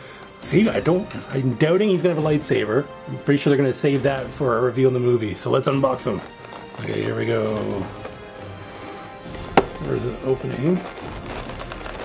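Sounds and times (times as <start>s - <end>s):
sharp tap on cardboard box: 9.6s - 9.8s.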